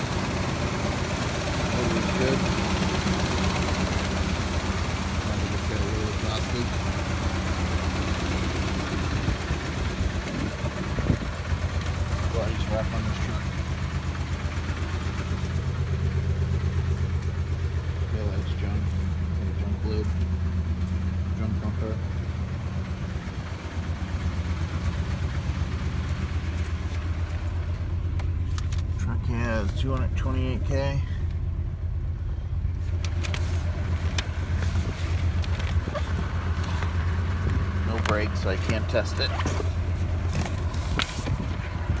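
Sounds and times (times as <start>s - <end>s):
truck engine idling: 0.0s - 42.0s.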